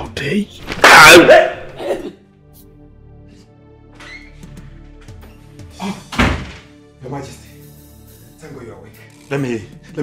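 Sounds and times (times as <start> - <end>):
film music: 0.0 - 10.0.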